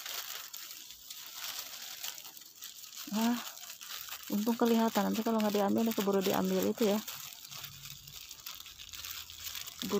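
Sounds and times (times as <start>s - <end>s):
leaves rustling: 0.0s - 9.9s
plastic glove crinkling: 0.0s - 9.9s.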